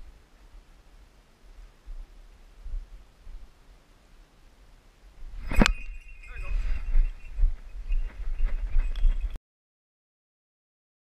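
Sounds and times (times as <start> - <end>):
low thumps and rustling: 5.2 - 9.4.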